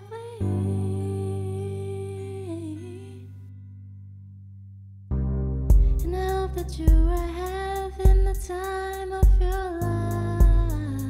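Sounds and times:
electric keyboard chord: 5.1 - 7.6.

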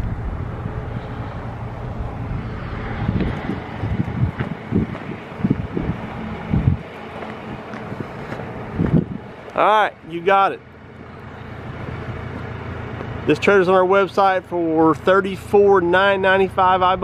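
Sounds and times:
low thumps: 0.0 - 6.8
wind buffeting microphone: 0.0 - 9.4.

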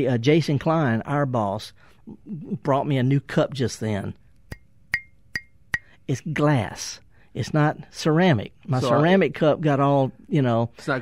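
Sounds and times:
glass cup tapped ringing: 4.9 - 5.9.

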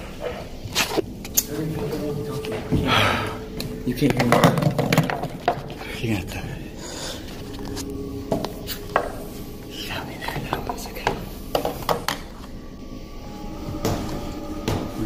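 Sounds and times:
indistinct voices: 0.0 - 15.0
steady low hum: 0.0 - 15.0.

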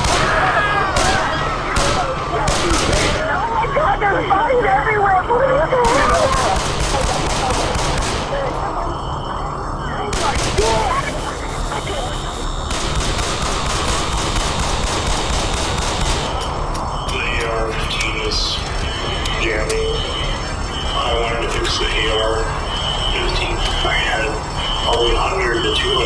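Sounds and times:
rapid rifle fire: 0.0 - 3.3, 5.8 - 8.4, 10.1 - 10.9, 12.7 - 16.4
people screaming: 0.0 - 3.6
cries and voices: 0.0 - 12.5.

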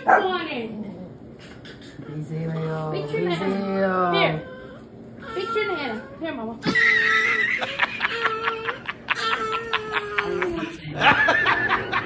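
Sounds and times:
people laughing: 6.6 - 12.0.

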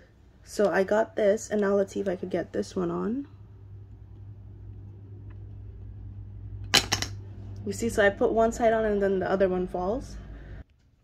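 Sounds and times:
plastic toys clattering on a table: 6.7 - 7.2.

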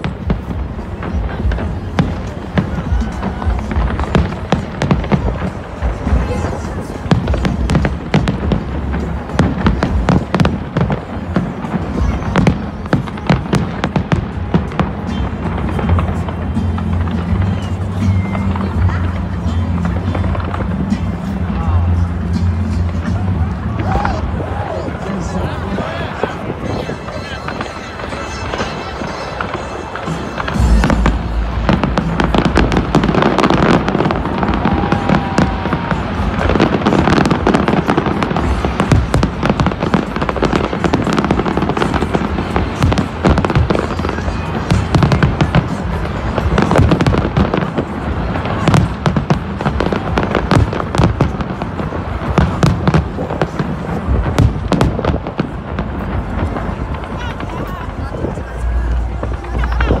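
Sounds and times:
deep fireworks booms: 0.0 - 24.7, 25.6 - 60.0
fireworks bangs and crackles: 0.0 - 60.0.

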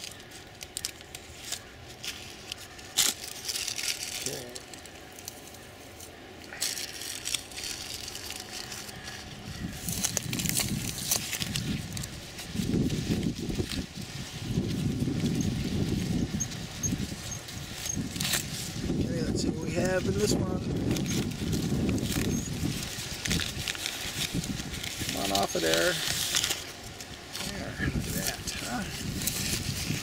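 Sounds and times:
paper bag crinkling and rustling: 0.0 - 5.4, 6.5 - 30.0.

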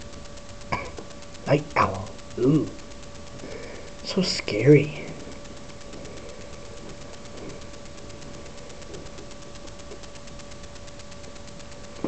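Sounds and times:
fast even ticking: 0.0 - 12.0
microphone hiss: 0.0 - 12.0
thin constant whine: 0.0 - 12.0
soft movement sounds: 2.9 - 12.0.

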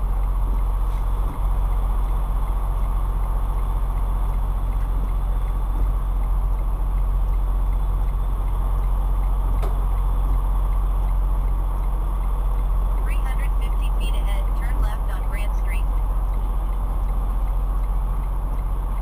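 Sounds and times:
diesel engine low rumble: 0.0 - 19.0.

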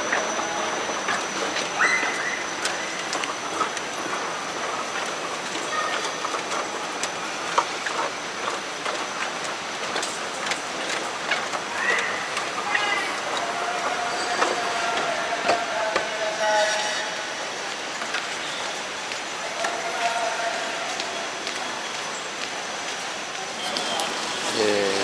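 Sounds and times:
moving walkway mechanical noise: 0.0 - 25.0.

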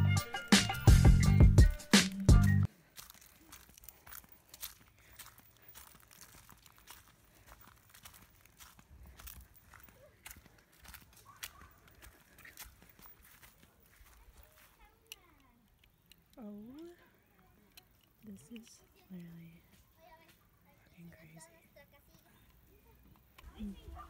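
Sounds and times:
footsteps crunching on dry dirt: 2.7 - 15.4, 19.2 - 21.4.

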